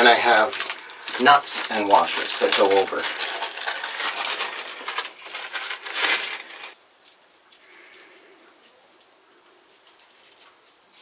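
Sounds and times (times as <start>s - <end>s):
metal nuts and washers clinking: 0.0s - 9.1s.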